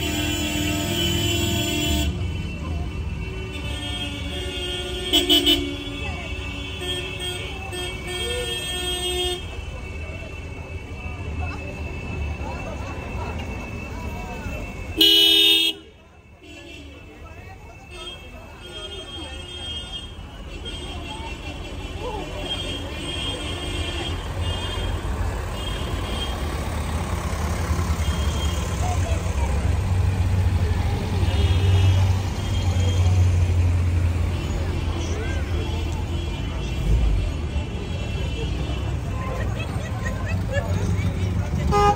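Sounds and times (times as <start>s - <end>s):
spectators chatting: 0.0s - 41.9s
voices of onlookers: 1.4s - 41.9s
car horn steady note: 15.0s - 15.9s
cars driving slowly past: 20.1s - 41.9s.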